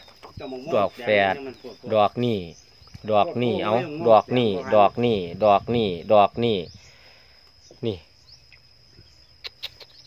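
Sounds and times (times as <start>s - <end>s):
high-pitched insect call: 0.0s - 10.0s.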